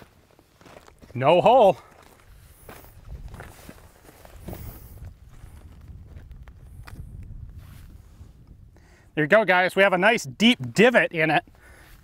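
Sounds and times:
footsteps on gravelly ground: 0.0 - 8.0.

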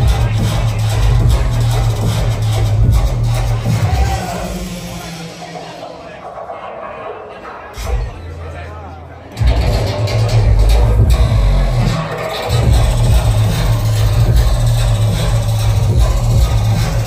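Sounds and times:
bass-heavy electronic dance music: 0.0 - 8.6, 9.3 - 17.0.

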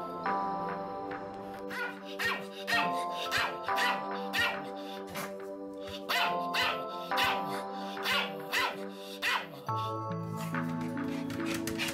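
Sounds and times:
background music of held chords: 0.0 - 11.9
dog barking: 1.7 - 5.3, 6.0 - 9.7.

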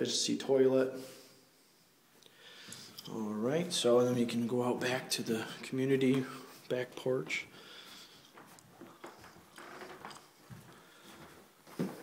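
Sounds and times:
footsteps on carpeted stairs: 7.2 - 12.0.

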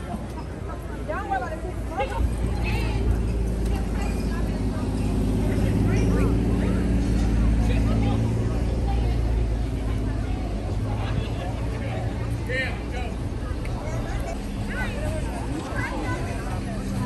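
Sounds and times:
people talking: 0.0 - 17.0
vehicle engine running: 1.6 - 17.0.

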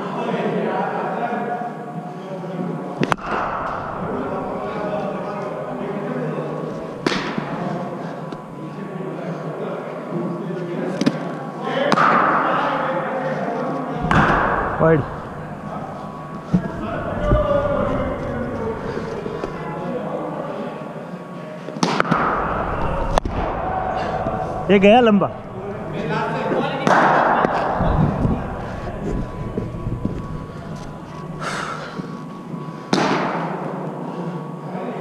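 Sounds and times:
murmur of voices: 0.0 - 33.0
cricket bat striking ball: 7.0 - 7.6.

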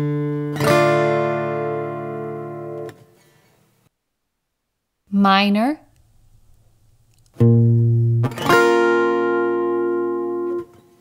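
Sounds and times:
guitar chord ringing: 0.0 - 3.0, 7.4 - 11.0.

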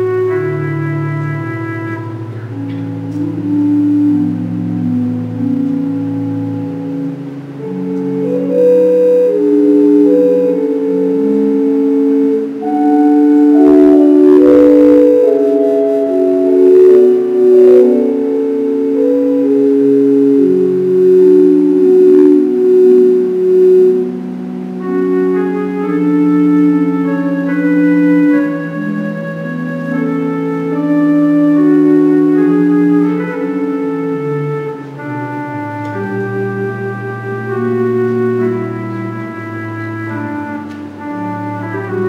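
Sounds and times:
organ playing slow chords: 0.0 - 42.0.

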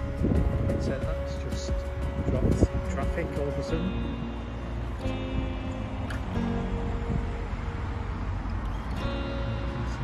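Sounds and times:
cars passing on road: 0.0 - 10.0.

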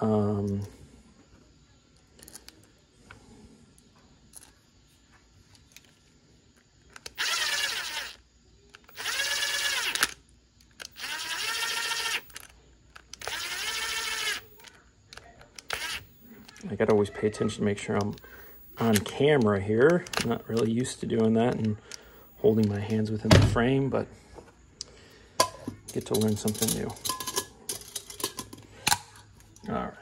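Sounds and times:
clicks of small parts handled: 2.2 - 2.7, 4.3 - 4.5, 5.5 - 7.2, 12.3 - 13.3, 24.8 - 29.7
impact driver motor whine: 7.1 - 8.2, 8.8 - 10.2, 10.9 - 12.5, 13.1 - 14.7, 15.6 - 16.6, 18.0 - 19.1, 20.1 - 20.7, 22.0 - 23.0.

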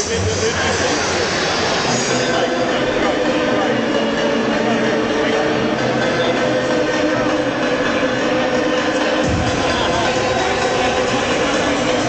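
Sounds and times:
music over loudspeakers: 0.0 - 12.0
stadium crowd noise: 0.0 - 12.0.

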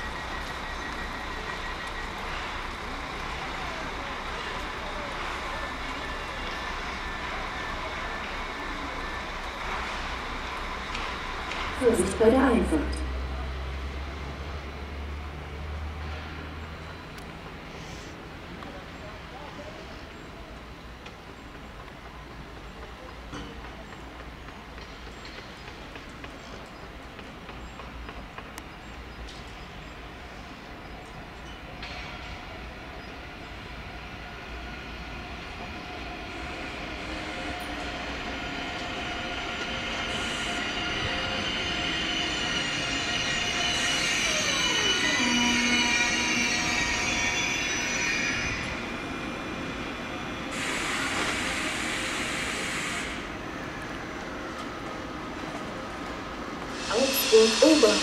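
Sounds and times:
train braking squeal and whine: 0.0 - 13.1, 27.8 - 58.0
air brake hiss: 17.7 - 18.2, 50.5 - 53.2, 56.7 - 58.0.

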